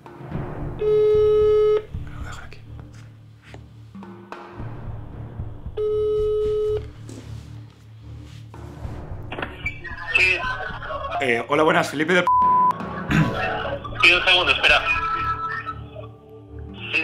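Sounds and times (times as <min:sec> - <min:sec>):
soft background music: 0:00.0 - 0:17.0
phone ringback tone: 0:00.8 - 0:01.9, 0:05.8 - 0:07.0.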